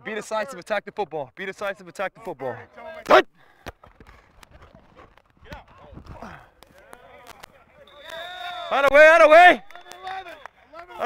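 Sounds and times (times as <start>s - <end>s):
shouted word: 3.1s - 3.3s.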